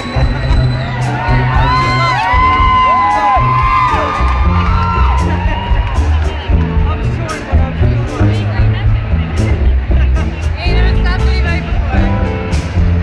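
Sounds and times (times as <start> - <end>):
audience whooping and cheering: 0.0 - 8.1
drums: 0.0 - 13.0
upright bass notes: 0.0 - 13.0.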